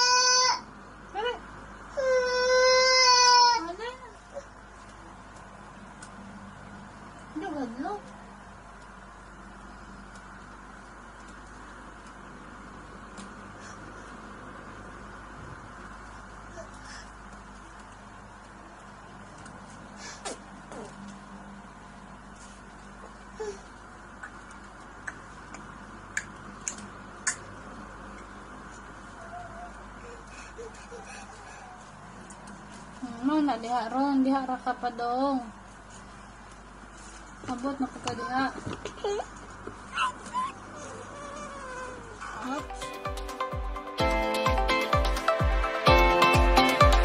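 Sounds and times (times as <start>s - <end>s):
toddler whining: 0.0s - 0.7s, 2.0s - 4.5s, 29.2s - 32.0s, 39.9s - 42.8s.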